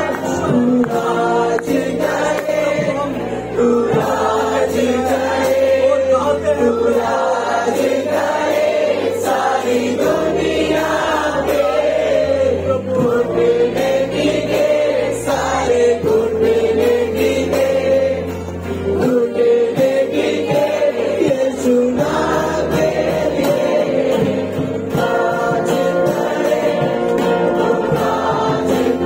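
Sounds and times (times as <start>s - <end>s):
group singing a worship song: 0.0s - 29.0s
sustained bass notes: 0.0s - 29.0s.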